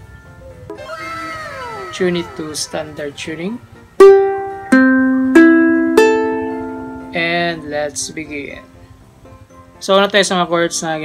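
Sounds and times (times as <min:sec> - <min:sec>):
ukulele strings plucked: 0:04.0 - 0:07.6.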